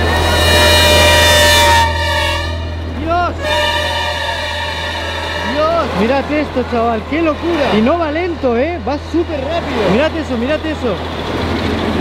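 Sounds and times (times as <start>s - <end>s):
train horn blast: 0.0s - 7.5s
passenger train approaching: 0.0s - 12.0s.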